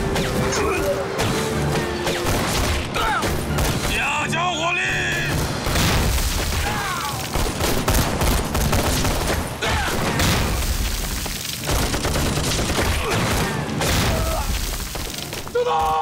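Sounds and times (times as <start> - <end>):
rifle and pistol gunfire: 5.3 - 15.0
explosions: 5.3 - 15.2.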